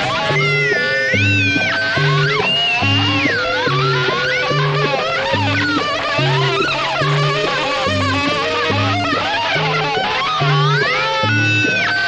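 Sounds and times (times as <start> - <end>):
song with bass and melody: 0.0 - 12.0.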